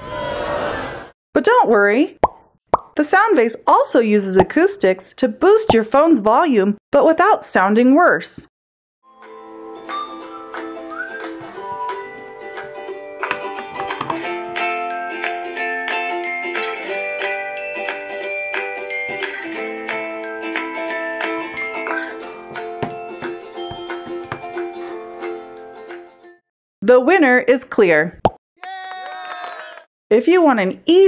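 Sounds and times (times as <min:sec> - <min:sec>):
ukulele music from phone speaker: 0:09.8 - 0:26.1.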